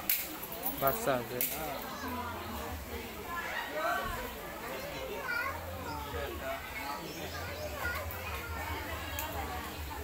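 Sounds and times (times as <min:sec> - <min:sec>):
children talking and calling out: 0:01.8 - 0:10.0.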